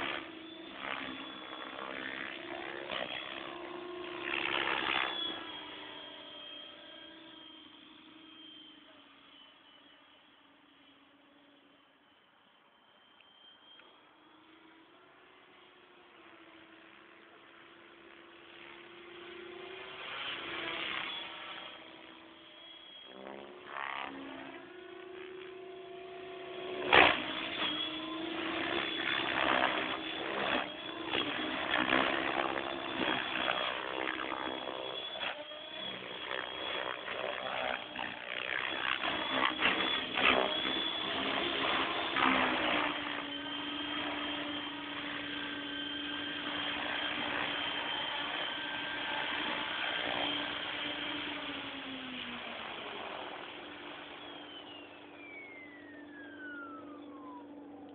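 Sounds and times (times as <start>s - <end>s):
rc helicopter motor and rotor whine: 0.0s - 57.9s.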